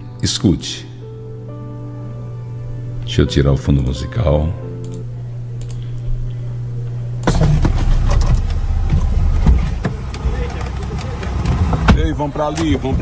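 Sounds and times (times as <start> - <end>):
steady low hum: 0.0 - 13.0
car engine running: 7.2 - 13.0
street traffic: 7.4 - 13.0.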